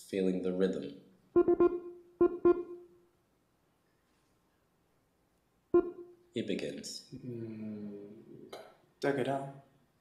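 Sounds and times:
sharply struck musical notes: 5.8 - 6.2.

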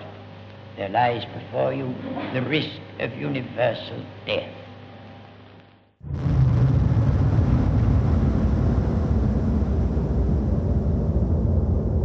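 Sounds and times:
explosion rumble: 6.0 - 12.0.

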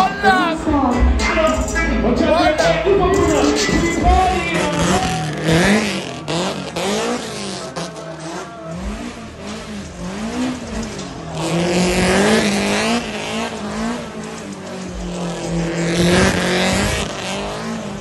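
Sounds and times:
car engine revving: 0.0 - 18.0.

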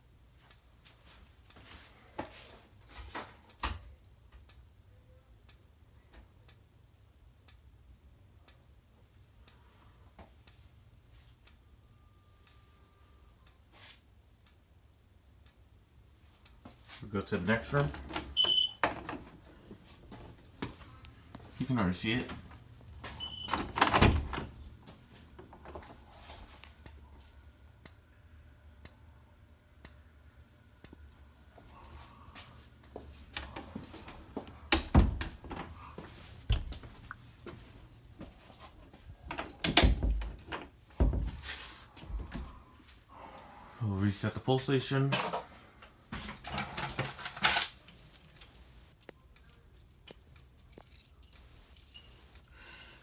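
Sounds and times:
dull knocks and thumps on door: 41.0 - 41.4.

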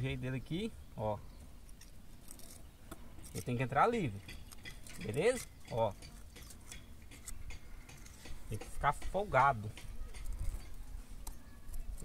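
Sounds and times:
rebar clicking against concrete: 3.2 - 10.8.

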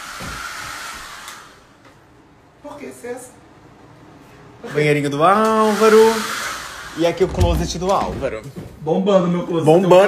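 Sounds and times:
hair dryer blowing: 0.0 - 1.8, 5.2 - 7.2.

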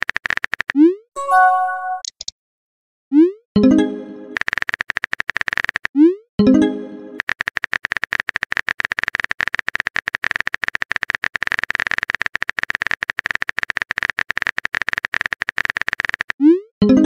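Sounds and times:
keyboard typing clicks: 0.2 - 2.3.

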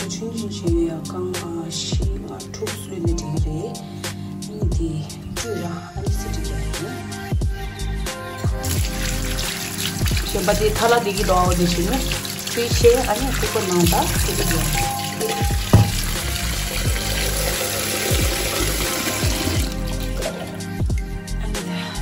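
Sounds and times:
background song with singing: 0.0 - 14.1, 19.0 - 22.0
water filling metal pot: 8.5 - 21.0
potatoes being rubbed in water: 8.6 - 20.4
tap water running into steel sink: 8.6 - 21.0
sharp knock: 15.7 - 16.2.

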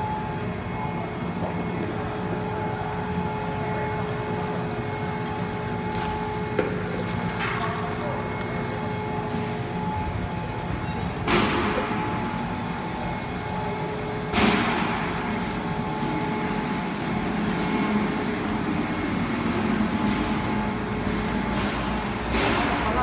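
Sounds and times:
extrusion machine humming: 0.0 - 23.0.

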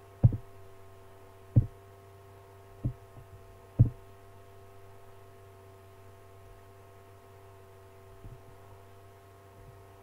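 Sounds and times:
steady electrical hum: 0.0 - 10.0
dull low thumps: 0.2 - 0.5, 1.5 - 1.8, 2.8 - 4.1.

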